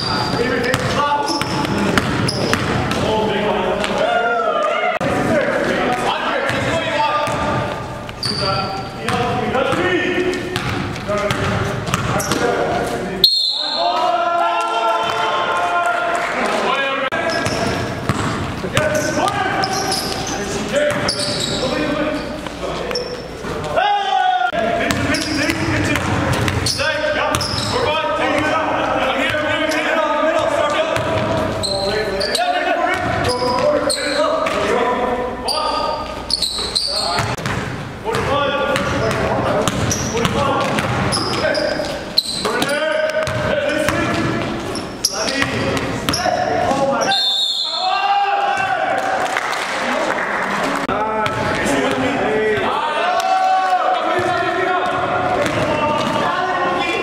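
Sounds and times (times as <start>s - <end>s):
sneakers squeaking: 0.0s - 4.2s, 5.6s - 14.1s, 17.1s - 23.9s, 24.7s - 34.8s, 35.4s - 48.8s, 54.0s - 57.0s.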